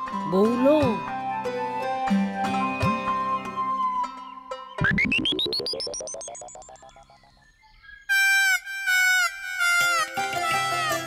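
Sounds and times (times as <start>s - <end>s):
wind instrument holding loud notes: 8.1s - 11.0s.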